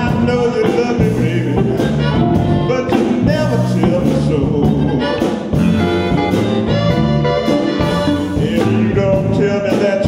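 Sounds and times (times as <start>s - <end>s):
live blues band playing: 0.0s - 10.0s.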